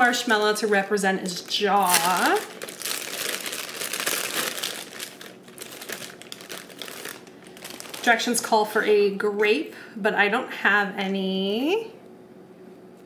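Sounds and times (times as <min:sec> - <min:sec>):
plastic bag crinkling: 0:00.0 - 0:08.7.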